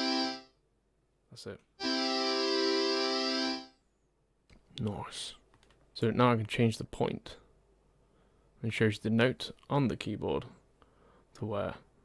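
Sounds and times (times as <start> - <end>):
synthesizer chord: 0.0 - 0.5, 1.8 - 3.7.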